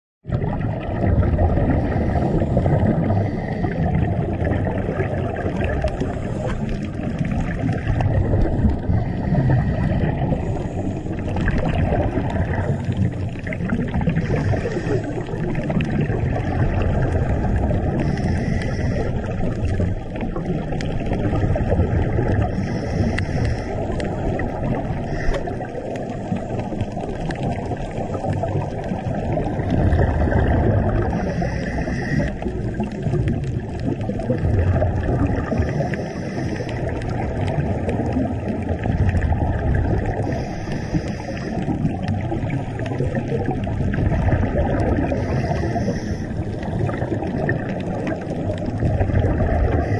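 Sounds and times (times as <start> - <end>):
muffled underwater water rumble: 0.2 - 49.9
regulator bubbling: 0.2 - 49.9.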